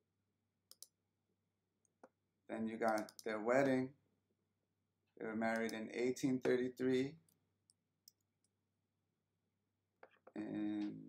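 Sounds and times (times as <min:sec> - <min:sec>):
computer mouse clicks: 0:00.7 - 0:00.9, 0:02.9 - 0:03.3.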